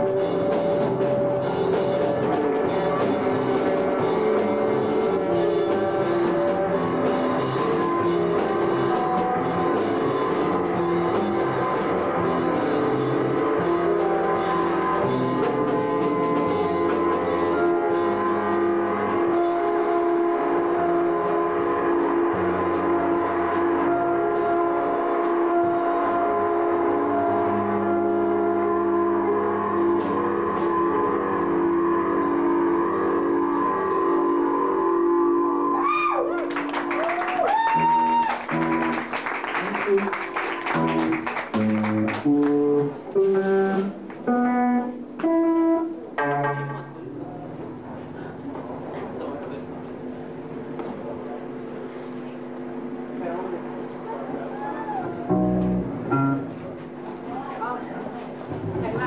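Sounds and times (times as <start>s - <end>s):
electric guitar drone: 0.0s - 59.0s.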